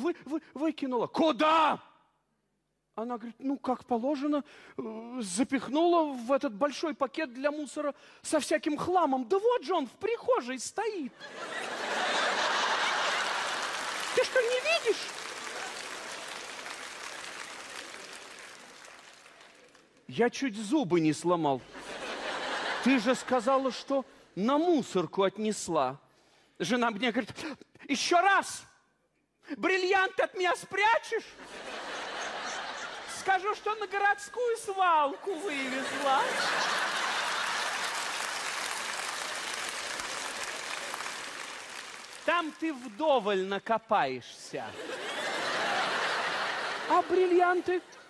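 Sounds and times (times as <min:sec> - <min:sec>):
audience applauding: 0:11.5 - 0:20.0, 0:35.3 - 0:43.3.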